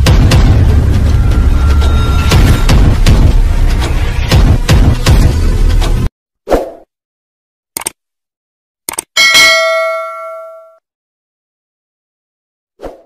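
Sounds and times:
bright bell ding: 9.2 - 10.8.

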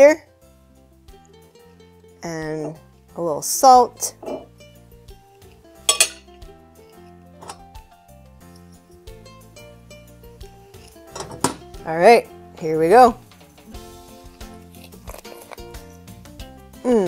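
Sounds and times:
soft background music: 0.0 - 17.0
knife clinking on ceramic plates: 4.2 - 4.5, 5.9 - 6.4, 7.4 - 7.7, 11.1 - 11.6.

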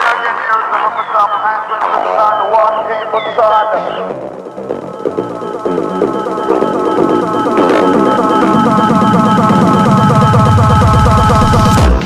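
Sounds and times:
electronic music: 3.4 - 12.0.

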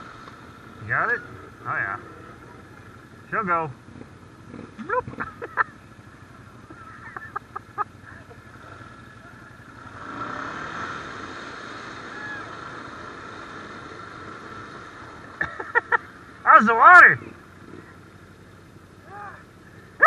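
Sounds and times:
atv engine running: 0.0 - 20.0
short shouts: 12.0 - 12.5, 19.0 - 19.5.

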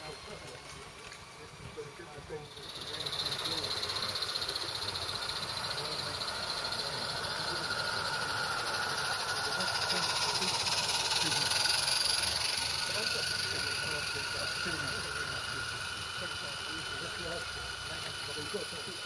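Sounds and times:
steam locomotive hissing: 0.0 - 19.0.

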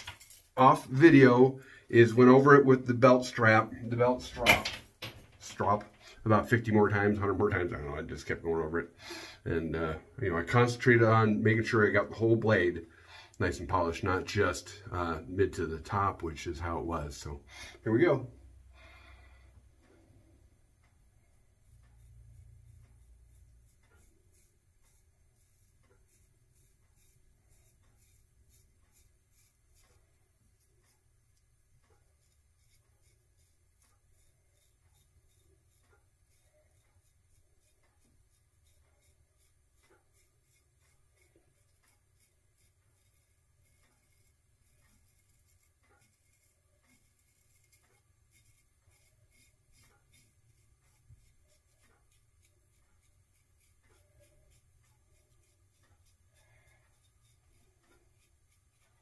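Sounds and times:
razor scraping stubble: 21.6 - 59.0.

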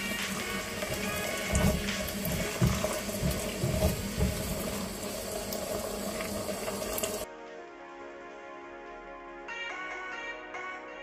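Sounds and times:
spatula stirring: 0.0 - 5.0
sauce bubbling in a saucepan: 0.0 - 7.3.

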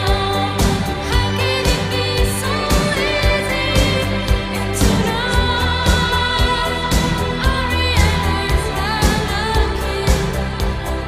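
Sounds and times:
person singing: 0.0 - 11.0
synth bass: 0.0 - 11.0.

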